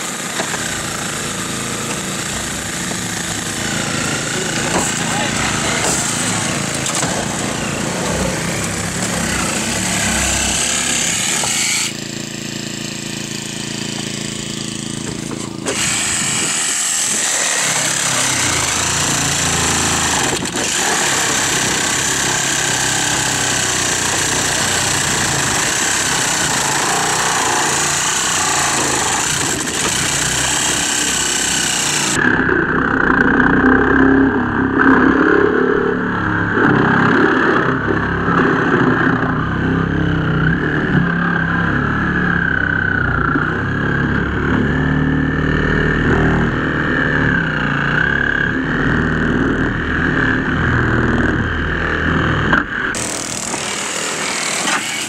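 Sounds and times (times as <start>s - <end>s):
reciprocating saw cutting metal: 0.0s - 35.3s, 45.5s - 55.0s
small engine running: 0.0s - 55.0s.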